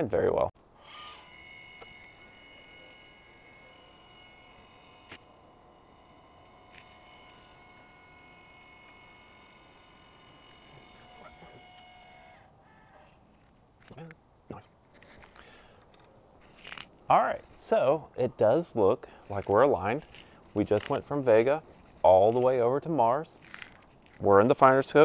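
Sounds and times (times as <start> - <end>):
electric motor whine: 0.7 - 13.6, 16.0 - 17.9, 19.1 - 25.0.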